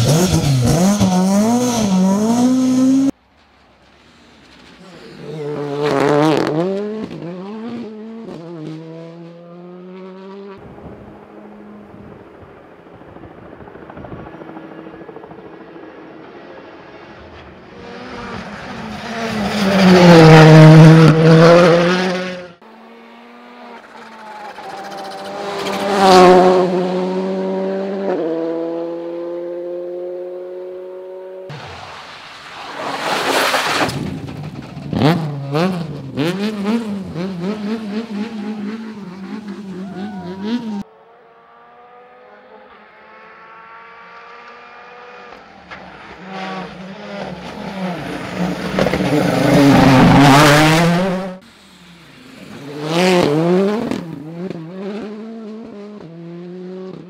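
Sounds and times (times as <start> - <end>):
rally cars passing at speed: 0.0 - 57.0.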